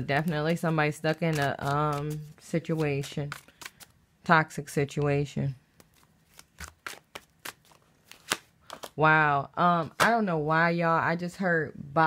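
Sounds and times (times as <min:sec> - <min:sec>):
cards being shuffled: 0:00.2 - 0:03.9, 0:05.8 - 0:09.0.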